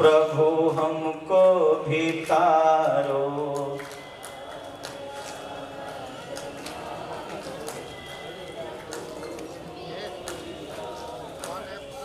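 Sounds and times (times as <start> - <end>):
congregation singing devotional song: 0.0 - 8.0
sharp claps: 2.1 - 8.2, 10.2 - 11.7.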